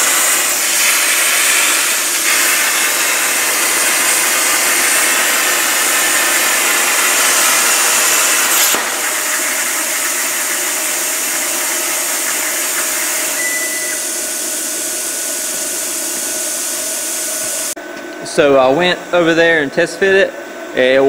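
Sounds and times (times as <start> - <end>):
plasma cutter hissing: 0.0 - 17.7.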